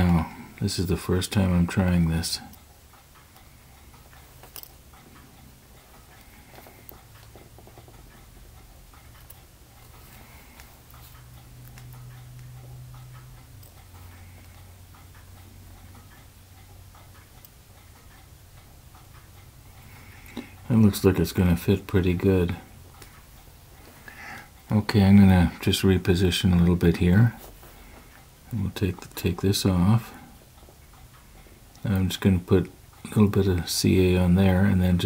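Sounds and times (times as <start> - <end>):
faint light ticks and clicks: 0.0 - 35.0
low steady hum: 0.0 - 35.0.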